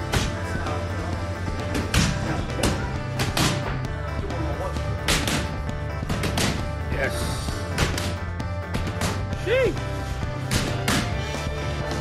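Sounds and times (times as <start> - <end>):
background music with bass: 0.0 - 12.0
boxing gloves hitting mitts: 1.6 - 3.8, 5.0 - 6.7, 7.7 - 9.4, 10.4 - 11.2.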